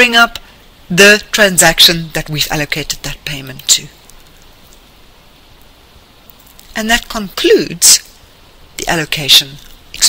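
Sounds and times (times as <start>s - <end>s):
faint low hum: 0.0s - 10.0s
microphone hiss: 0.0s - 10.0s.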